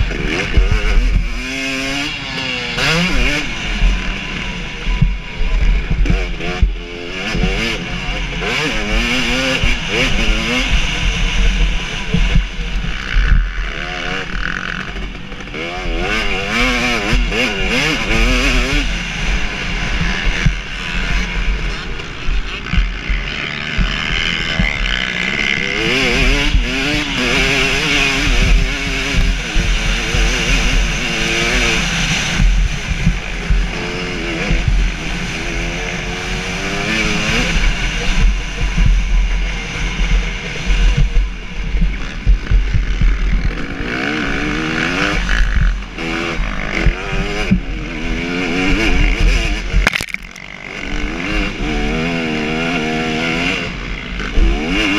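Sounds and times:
motocross engine revving: 0.0s - 41.2s, 42.0s - 54.9s.

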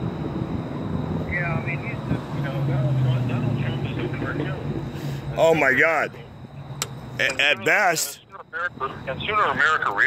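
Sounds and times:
low motor hum: 0.0s - 9.9s.

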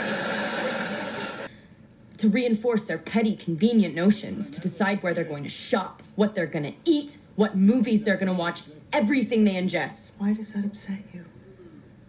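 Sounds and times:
audience laughing through tv speaker: 0.0s - 1.5s.

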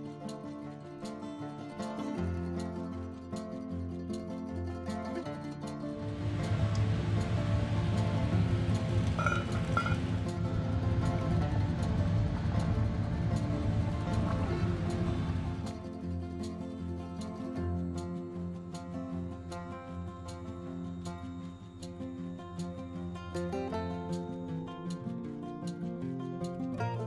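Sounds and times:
plucked-string background music: 0.0s - 27.0s
pot of water boiling: 6.0s - 15.9s.

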